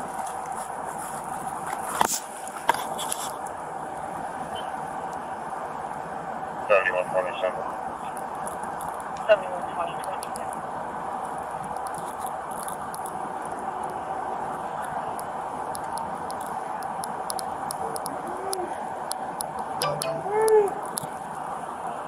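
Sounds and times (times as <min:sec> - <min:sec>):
steady outdoor hiss: 0:00.0 - 0:22.0.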